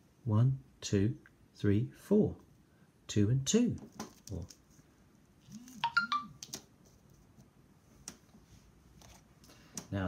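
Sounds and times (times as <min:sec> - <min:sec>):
electronic chime: 0:05.8 - 0:06.3.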